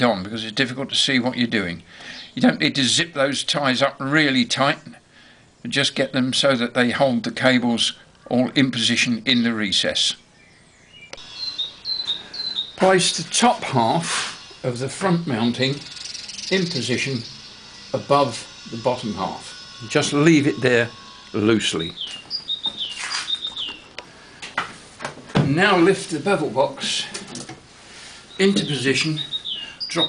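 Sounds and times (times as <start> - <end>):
bird chirping: 8.8 - 24.4, 28.0 - 30.0
rustling: 22.0 - 23.8.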